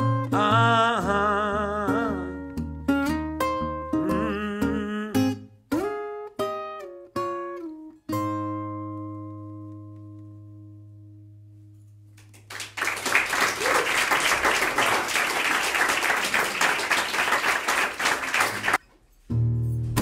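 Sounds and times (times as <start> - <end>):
audience applauding: 12.2 - 18.8.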